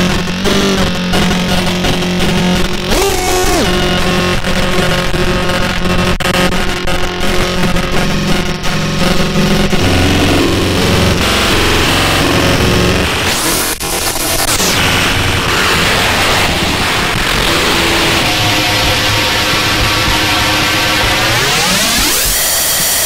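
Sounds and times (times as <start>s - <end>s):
glitchy electronic noise: 0.4s - 23.0s
droning tones: 14.7s - 22.8s.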